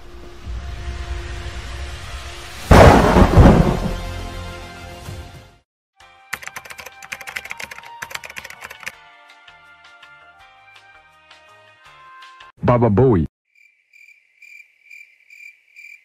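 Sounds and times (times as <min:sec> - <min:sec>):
thunderclap rumbling: 0:02.7 - 0:04.1
fast keyboard typing: 0:06.3 - 0:09.0.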